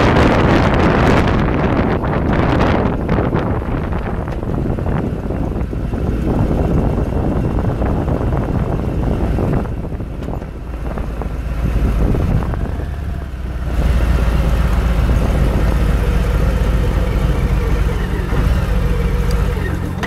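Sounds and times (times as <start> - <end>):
motorcycle engine running: 0.0 - 20.0
wind buffeting microphone: 0.0 - 20.0.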